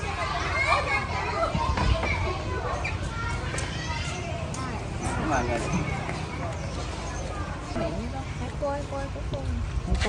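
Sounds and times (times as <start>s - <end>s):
children chattering and calling: 0.0s - 10.0s.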